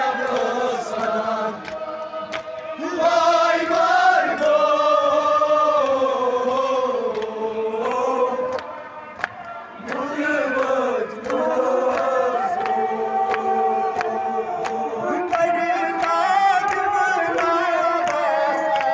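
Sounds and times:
men chanting a lament: 0:00.0 - 0:18.9.

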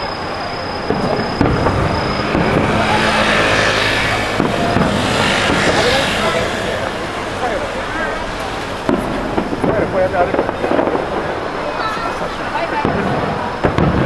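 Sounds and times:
crowd chatter: 0:00.0 - 0:14.0
vehicle passing by: 0:01.0 - 0:12.7.

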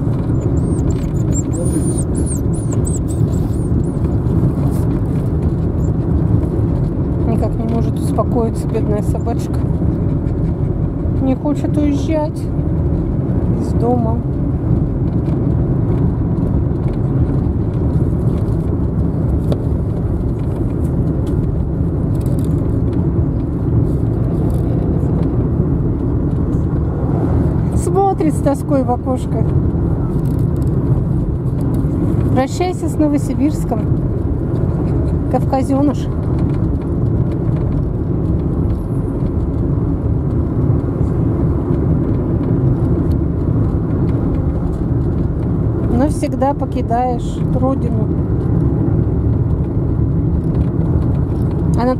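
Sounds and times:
road and engine rumble in car: 0:00.0 - 0:51.9.

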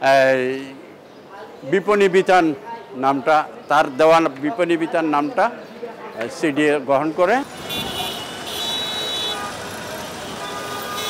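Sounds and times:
city street traffic: 0:00.0 - 0:11.0
crowd voices: 0:00.7 - 0:11.0
high-pitched vehicle horn: 0:07.6 - 0:11.0.

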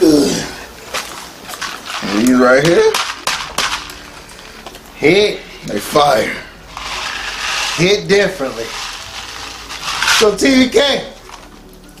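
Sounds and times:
plastic wrapper crinkling: 0:00.8 - 0:05.0, 0:06.6 - 0:12.0.

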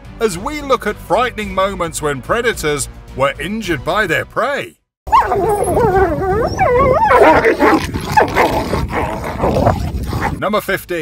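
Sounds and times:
dog howling: 0:05.1 - 0:10.3.

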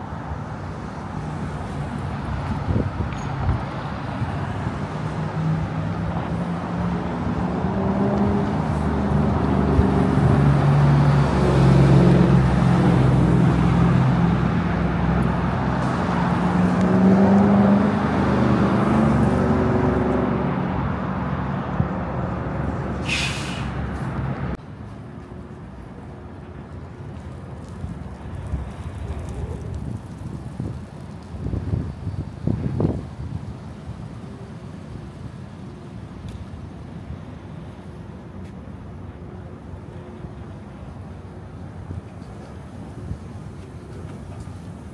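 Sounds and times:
street traffic noise: 0:00.0 - 0:44.9
air brake hiss: 0:23.0 - 0:23.8.

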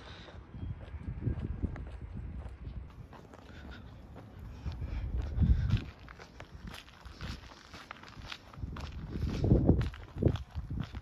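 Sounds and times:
footsteps on paved path: 0:00.0 - 0:11.0.

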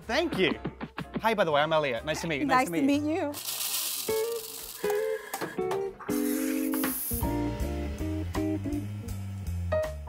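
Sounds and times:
brief high hiss: 0:06.1 - 0:07.4
bass line: 0:07.2 - 0:10.0.

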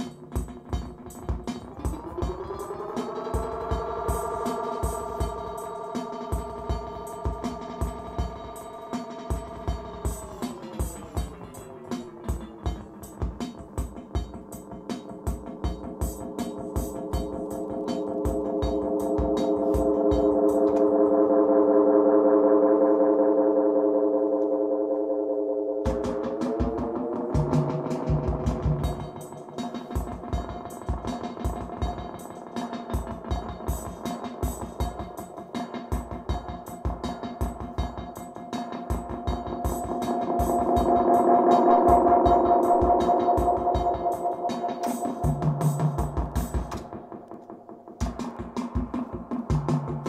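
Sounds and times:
drum machine beat: 0:00.0 - 0:21.1, 0:25.9 - 0:50.0
tape echo feedback drone: 0:00.0 - 0:35.5, 0:38.4 - 0:47.8.

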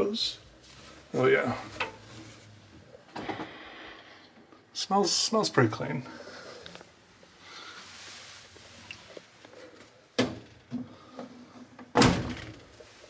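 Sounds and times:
soft rustle: 0:00.4 - 0:03.0, 0:06.2 - 0:10.0
door thud with rattle: 0:11.9 - 0:12.7.

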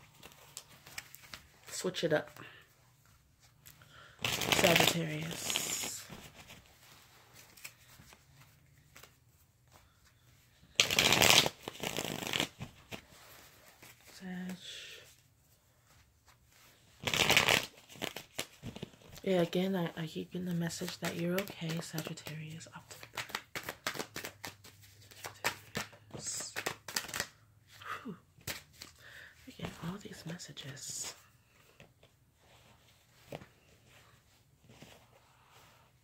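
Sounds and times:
cards shuffled: 0:00.0 - 0:02.5, 0:03.6 - 0:06.7, 0:07.3 - 0:10.0, 0:10.7 - 0:13.1, 0:17.0 - 0:19.3, 0:20.6 - 0:27.4, 0:28.4 - 0:32.1.

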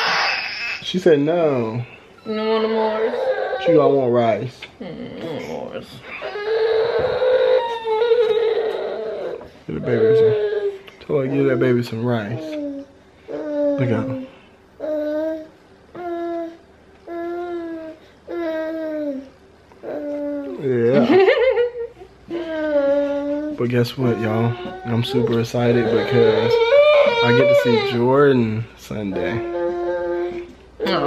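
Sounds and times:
baby wailing: 0:00.0 - 0:01.0, 0:02.2 - 0:04.1, 0:05.5 - 0:14.2, 0:22.3 - 0:28.4, 0:29.1 - 0:31.0
infant whining cry: 0:00.0 - 0:01.0, 0:02.2 - 0:04.3, 0:05.2 - 0:20.8, 0:22.3 - 0:28.5, 0:29.1 - 0:31.0.

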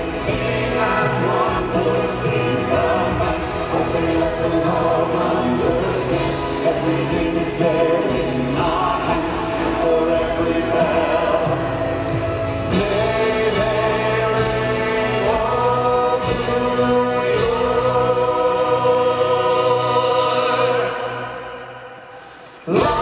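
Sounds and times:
choir singing long held notes: 0:00.0 - 0:23.0
live rock band: 0:00.0 - 0:23.0.

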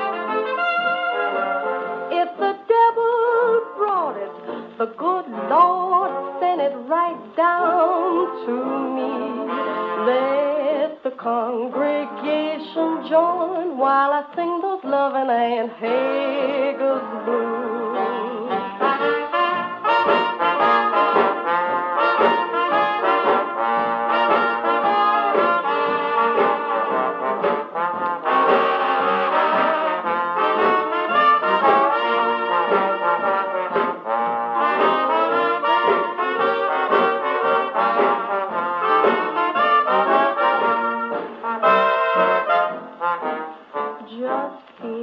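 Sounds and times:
brass-led jazz band on gramophone: 0:00.0 - 0:45.0.

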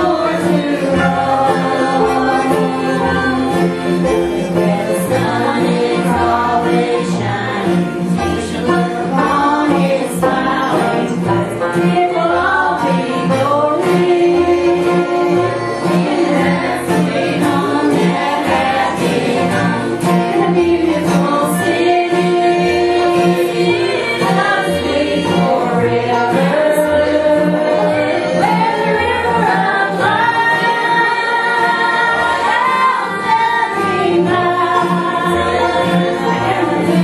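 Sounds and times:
backing voices singing: 0:00.0 - 0:37.0
plucked strings: 0:00.0 - 0:37.0
upright bass: 0:00.0 - 0:37.0.

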